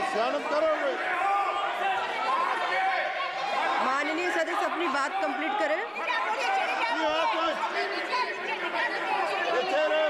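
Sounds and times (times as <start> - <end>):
crowd talking and shouting: 0.0 - 10.0.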